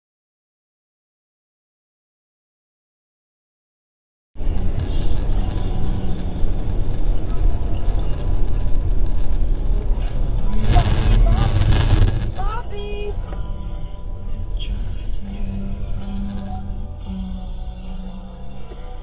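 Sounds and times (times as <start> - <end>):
car interior rumble: 4.4 - 19.0
background music: 9.9 - 19.0.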